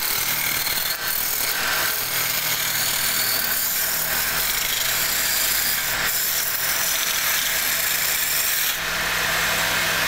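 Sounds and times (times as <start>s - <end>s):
lathe motor hum: 0.0s - 10.0s.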